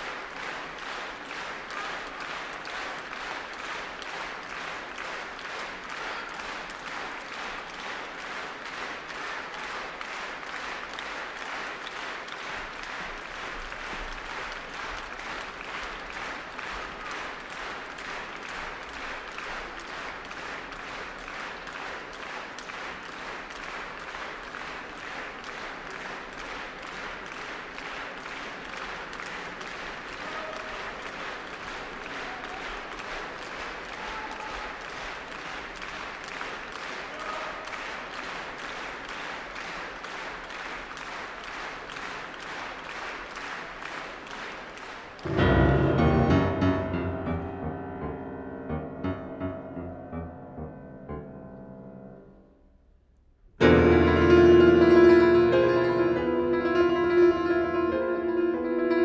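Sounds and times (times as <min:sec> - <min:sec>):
audience applauding: 0:00.0 - 0:50.7.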